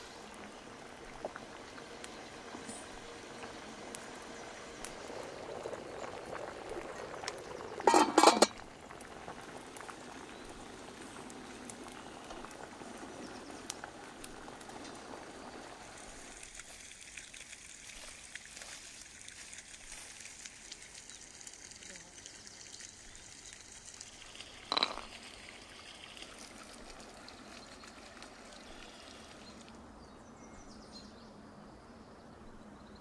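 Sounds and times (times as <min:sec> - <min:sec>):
samovar boiling: 0:00.0 - 0:33.0.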